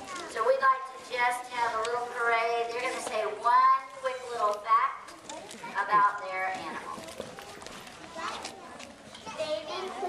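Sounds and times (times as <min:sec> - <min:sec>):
chatter of children and adults: 0:00.0 - 0:10.0.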